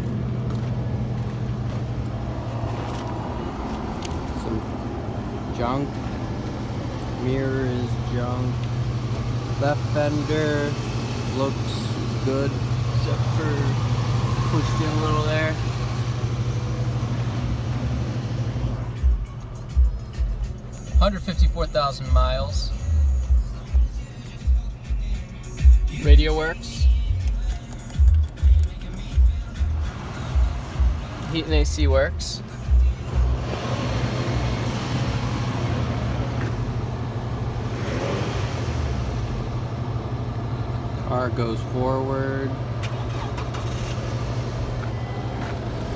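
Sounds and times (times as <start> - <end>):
car engine idling: 0.0 - 45.9.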